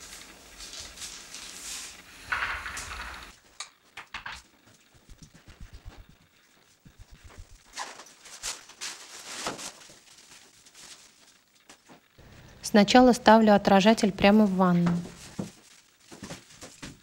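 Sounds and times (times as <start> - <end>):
handling noise rustle: 6.9 - 12.2.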